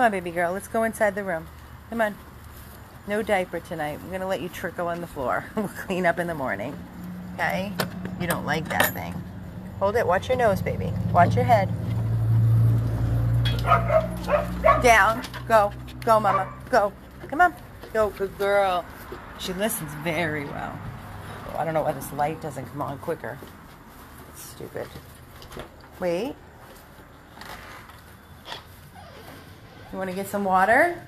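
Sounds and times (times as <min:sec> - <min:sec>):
soft rustle: 0:01.5 - 0:03.3, 0:22.5 - 0:30.4.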